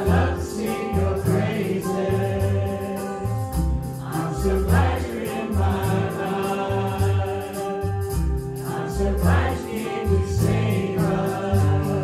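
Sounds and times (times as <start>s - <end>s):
children singing worship song: 0.0s - 3.3s, 4.0s - 8.0s, 8.6s - 12.0s
acoustic guitar: 0.0s - 12.0s
steady rhythmic beat: 0.0s - 12.0s.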